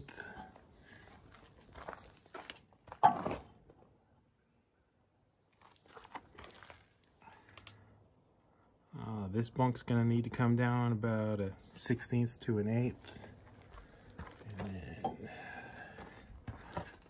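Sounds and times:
footsteps crunching on bark mulch: 1.1s - 3.4s.

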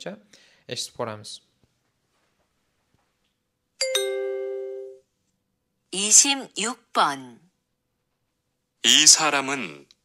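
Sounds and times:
two-note chime: 3.8s - 5.0s.

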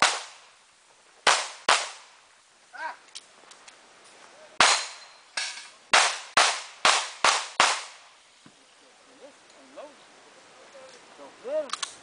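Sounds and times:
pistol shots: 0.0s - 0.4s, 1.2s - 2.1s, 4.6s - 5.1s, 5.9s - 8.0s.

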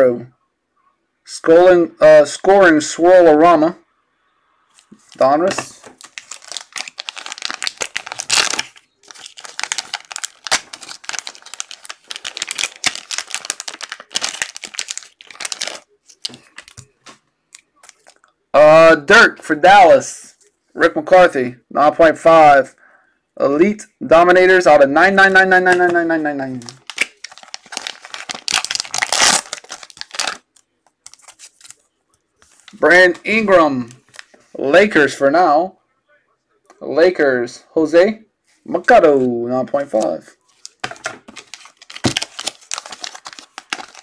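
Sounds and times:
plastic wrapping crinkling and tearing: 4.8s - 17.2s, 17.8s - 18.3s, 25.7s - 31.8s, 40.5s - 44.0s.

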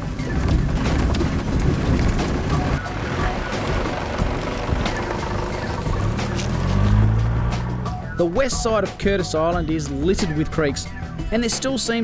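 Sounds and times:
vehicle engine running: 0.0s - 9.0s.

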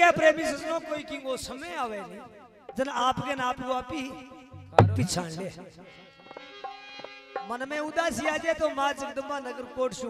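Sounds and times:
loud low thump: 4.6s - 5.2s.

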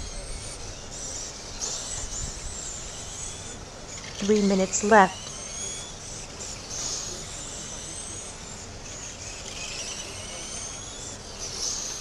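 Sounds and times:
rc car motors whining: 0.0s - 12.0s.

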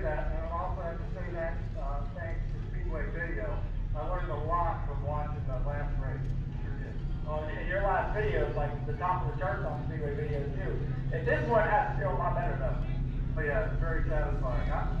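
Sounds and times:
car interior rumble: 0.0s - 15.0s
man talking: 0.0s - 15.0s.

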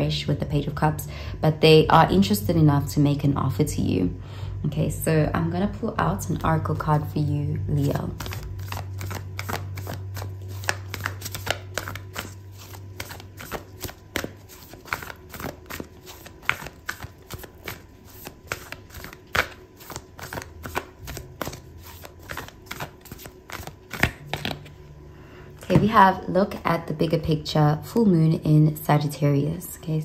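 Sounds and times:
cards being shuffled: 7.8s - 24.8s.

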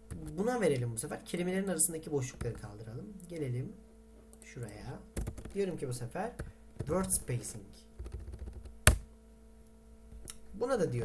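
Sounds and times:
typing on a keyboard: 5.2s - 5.6s, 8.0s - 9.0s.

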